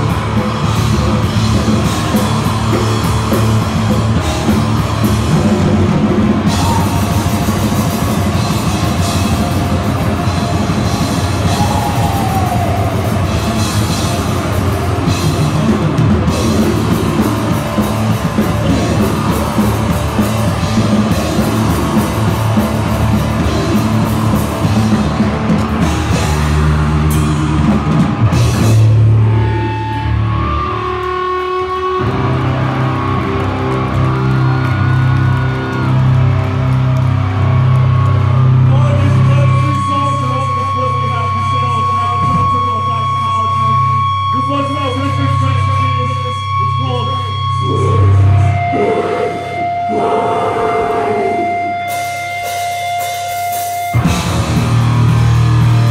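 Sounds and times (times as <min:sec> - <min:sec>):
fast drum kit: 0:00.0 - 0:29.2, 0:51.9 - 0:55.9
distorted electric guitar: 0:00.0 - 0:55.9.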